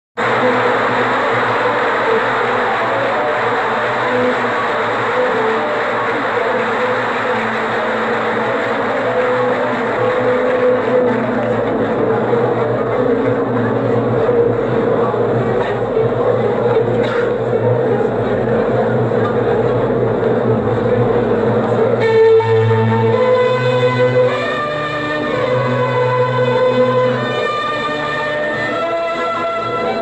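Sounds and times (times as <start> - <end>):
audience applauding: 0.2 - 17.6
faint orchestra notes: 0.2 - 30.0.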